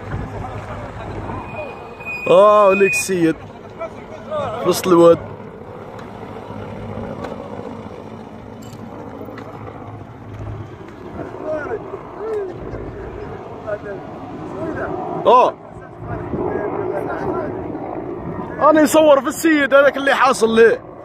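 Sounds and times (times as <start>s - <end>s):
distant voices calling out: 0.0s - 8.6s
steady rushing noise: 0.0s - 21.0s.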